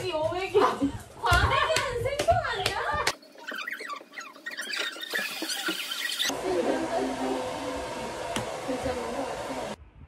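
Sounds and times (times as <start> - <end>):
hair dryer running: 6.3 - 9.8.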